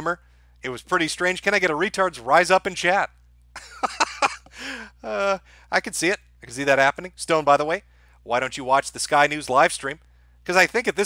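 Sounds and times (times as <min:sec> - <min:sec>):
man laughing: 0:03.6 - 0:05.4.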